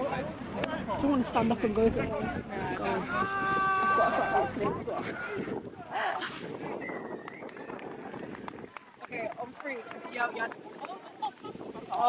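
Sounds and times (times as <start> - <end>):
people talking: 0.0 - 6.3, 9.0 - 12.0.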